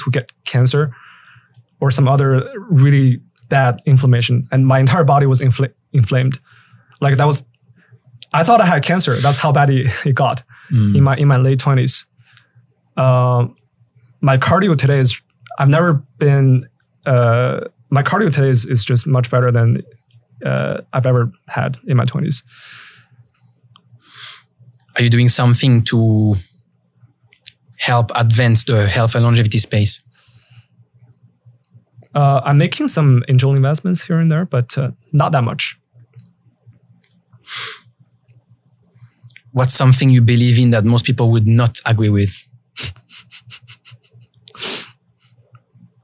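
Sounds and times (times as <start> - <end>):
faint low hum: 0.0 - 46.0
person inhaling: 0.9 - 1.6, 6.4 - 7.0, 9.1 - 9.4, 10.5 - 11.1, 22.5 - 23.1, 24.0 - 24.5, 37.4 - 37.9, 42.8 - 45.4
man laughing under his breath: 42.8 - 44.3.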